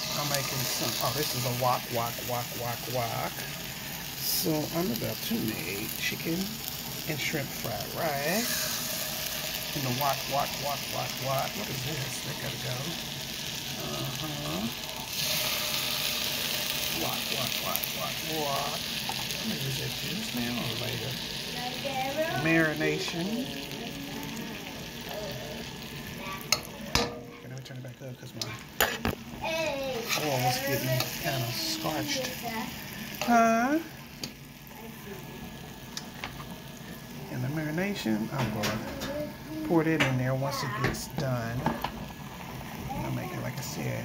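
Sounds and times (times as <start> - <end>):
chicken sizzling in hot oil: 0.0 - 44.0.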